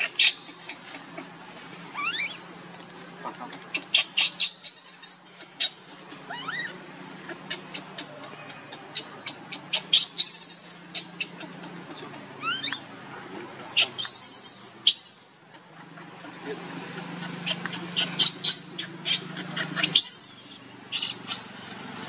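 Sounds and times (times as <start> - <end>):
baby monkey squealing: 0.0 - 1.2, 1.9 - 2.4, 3.7 - 11.5, 12.4 - 12.9, 13.8 - 15.4, 17.1 - 22.0.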